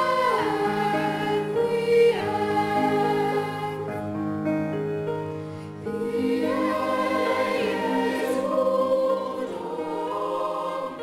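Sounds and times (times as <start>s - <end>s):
choir singing long held notes: 0.0s - 4.3s, 5.6s - 11.0s.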